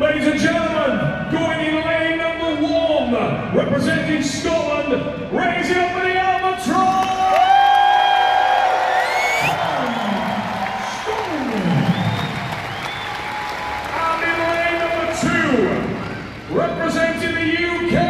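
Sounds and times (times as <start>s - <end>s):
crowd cheering and applauding: 6.9s - 17.2s.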